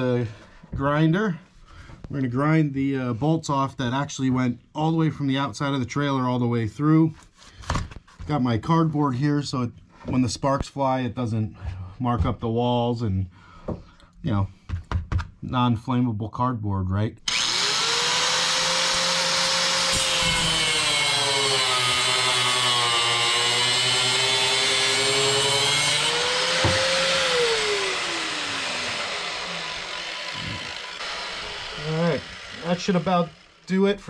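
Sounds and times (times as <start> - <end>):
angle grinder cutting steel: 17.3 - 34.0.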